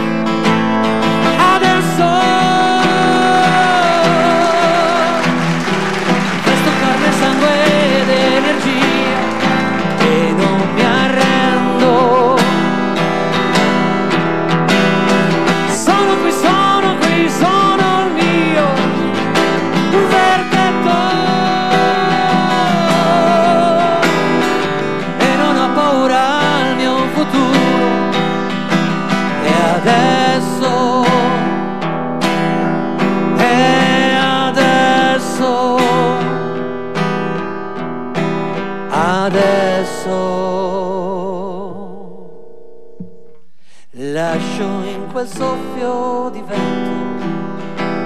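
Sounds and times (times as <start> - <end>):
man singing with vibrato: 0.0 - 5.6, 6.2 - 37.1, 38.6 - 42.6, 43.6 - 48.0
strummed acoustic guitar: 0.0 - 48.0.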